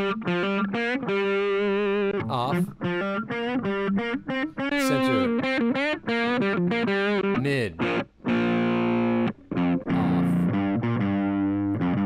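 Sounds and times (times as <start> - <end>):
picked guitar notes: 0.0 - 12.0
distorted electric guitar chord: 4.7 - 5.6.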